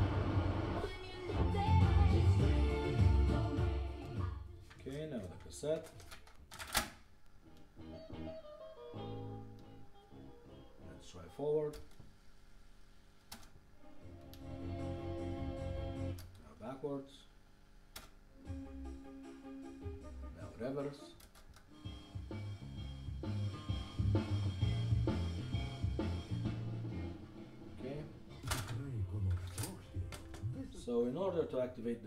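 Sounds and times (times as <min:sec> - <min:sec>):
music with drums and bass: 0:00.0 - 0:04.3, 0:21.8 - 0:27.8
music from cassette tape: 0:00.0 - 0:04.5, 0:07.4 - 0:10.9, 0:13.3 - 0:16.3, 0:18.0 - 0:31.3
cassette deck clicks: 0:28.4 - 0:30.5.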